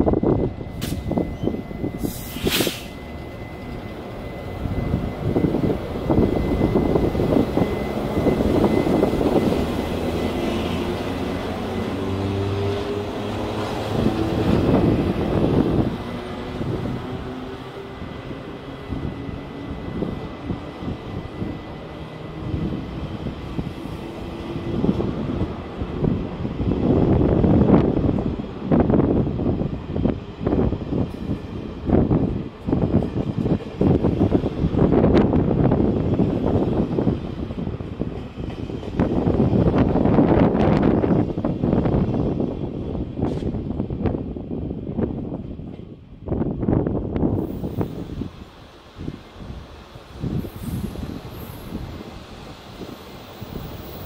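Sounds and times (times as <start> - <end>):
locomotive rumble with rising hum: 0.0 - 54.0.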